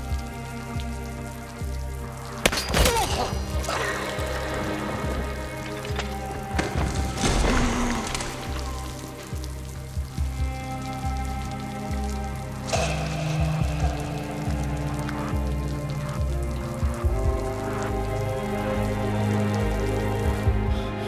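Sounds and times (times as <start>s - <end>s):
film score low held notes: 0.0s - 21.0s
heavy water spattering on floor: 0.0s - 21.0s.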